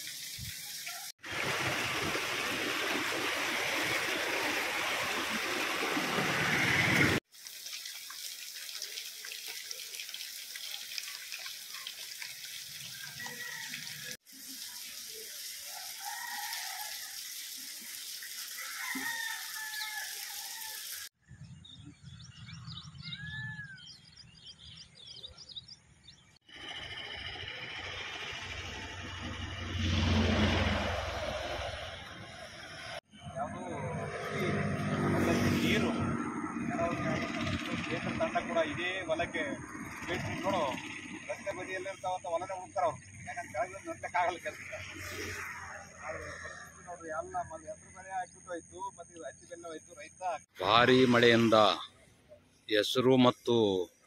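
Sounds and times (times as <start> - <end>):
floodwater rushing over rocks: 0.0 - 21.1
water running: 0.0 - 21.2
birds chirping: 21.3 - 26.4.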